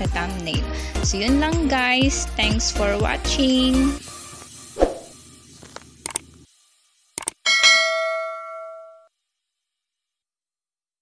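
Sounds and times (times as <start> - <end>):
quick clicks: 6.0 - 6.2, 7.2 - 7.4
bright bell chime: 7.5 - 9.1.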